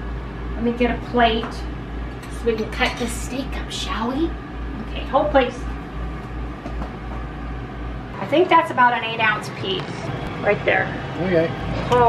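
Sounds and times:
appliance fan humming and rushing: 0.0 - 12.0.

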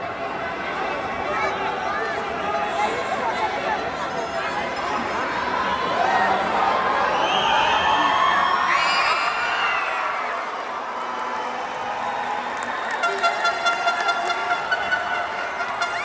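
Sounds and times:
crowd cheering and shouting: 5.0 - 16.0
pulsing rhythm with pitched tone: 13.0 - 16.0.

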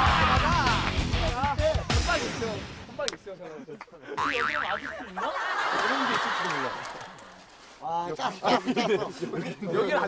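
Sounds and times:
men talking: 0.3 - 10.0
warbling cartoon tone: 4.2 - 5.0
men chuckling: 8.4 - 10.0.

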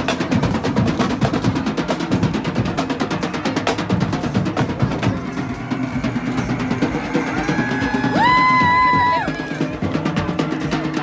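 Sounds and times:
marching snare and bass drums: 0.0 - 11.0.

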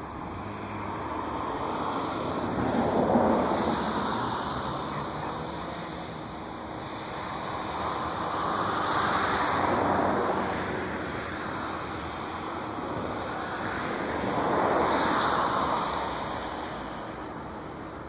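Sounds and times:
passing road traffic rushing: 0.0 - 18.0.

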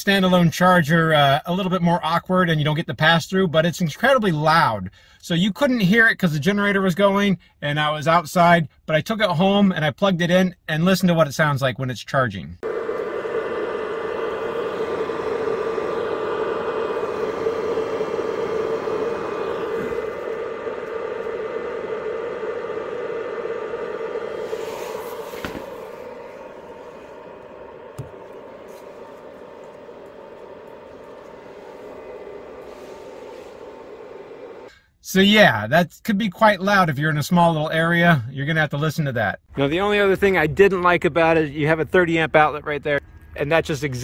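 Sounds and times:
charger humming loudly: 12.6 - 34.8.

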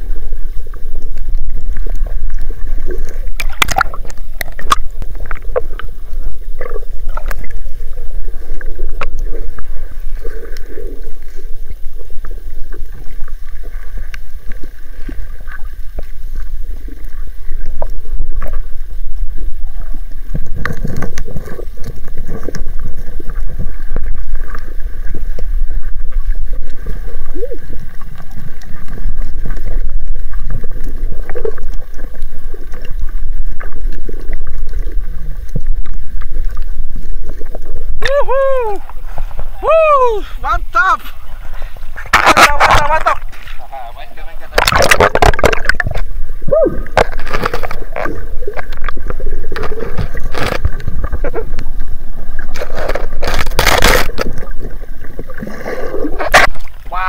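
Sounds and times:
faint steady hum: 0.0 - 57.0
underwater bubbling: 0.0 - 57.0
water rumbling against camera: 0.0 - 57.0.

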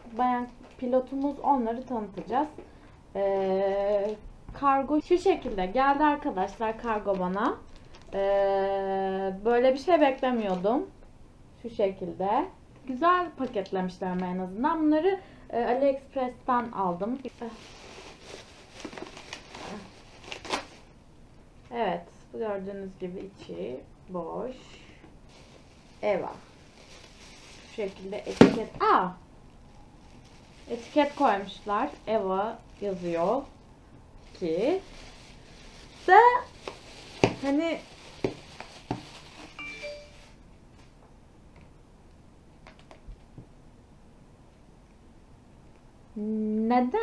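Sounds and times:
plastic bag rustling: 5.3 - 8.2, 17.2 - 21.0, 25.2 - 33.6, 34.2 - 40.8
plastic packaging crinkling: 5.8 - 8.2, 17.2 - 21.0, 25.3 - 28.8, 29.4 - 33.6, 34.2 - 40.4
rising chime: 39.6 - 40.4.

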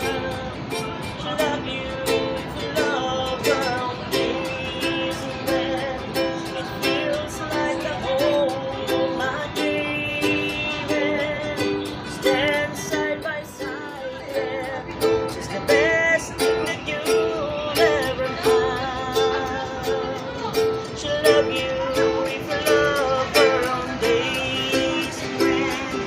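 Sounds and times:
person singing: 0.0 - 26.0
ukulele strumming chords: 0.0 - 26.0.

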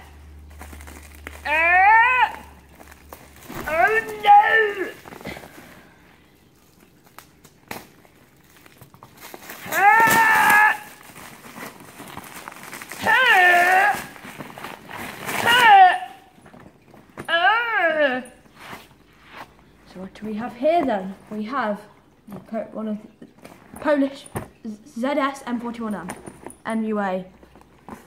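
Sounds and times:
plastic wrapping crinkling: 0.0 - 17.3.

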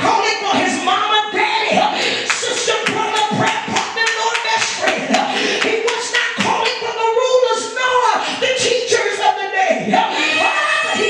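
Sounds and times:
woman singing amplified: 0.0 - 11.0
rhythmic clapping: 1.7 - 7.2.

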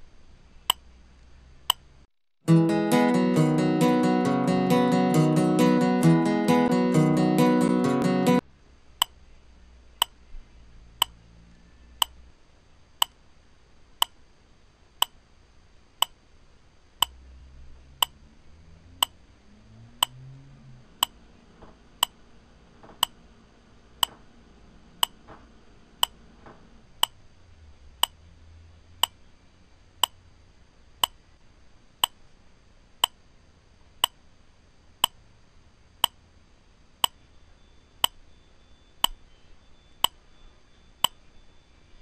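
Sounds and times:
wall clock ticking: 20.0 - 20.2.

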